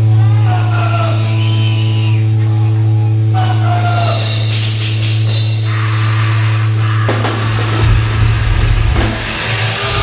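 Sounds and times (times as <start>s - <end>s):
distorted electric guitars: 0.0s - 10.0s.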